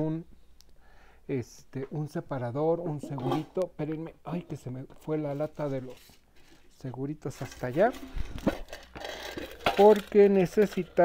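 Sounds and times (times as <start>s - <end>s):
rustling and handling clicks: 7.4s - 11.0s.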